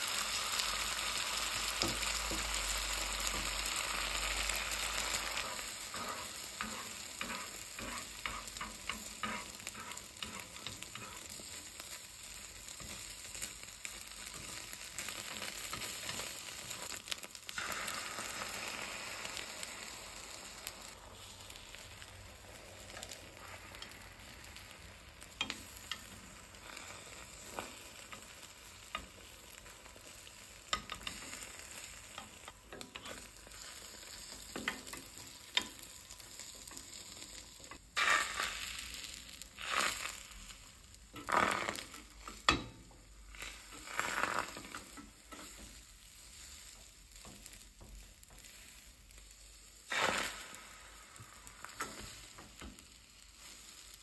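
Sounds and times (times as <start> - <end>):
egg sizzling in a pan: 0.0 - 54.0
utensils tapping a pan: 1.4 - 17.7, 25.3 - 38.4, 41.1 - 45.8.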